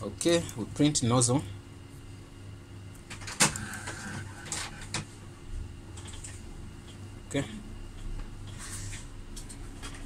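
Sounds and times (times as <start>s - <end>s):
printer motor whine: 3.0s - 5.1s
printer mechanical clicks: 3.1s - 5.1s.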